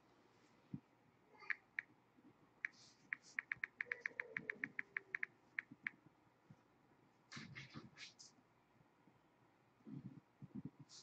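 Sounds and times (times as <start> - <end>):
touchscreen keyboard clicks: 2.7 - 6.0.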